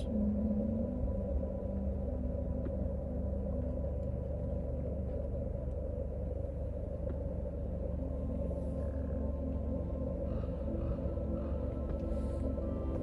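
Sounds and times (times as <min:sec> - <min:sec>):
faint constant hum: 0:00.0 - 0:13.0.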